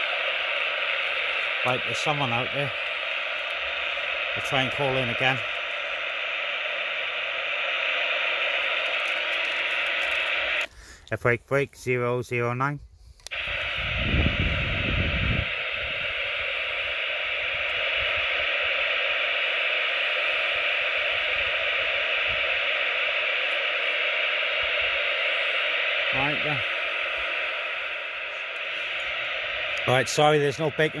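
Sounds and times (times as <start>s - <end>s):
faint radio signal warble: 0.0s - 10.7s, 13.3s - 31.0s
radio static hiss: 0.0s - 31.0s
low rumble: 13.4s - 30.1s.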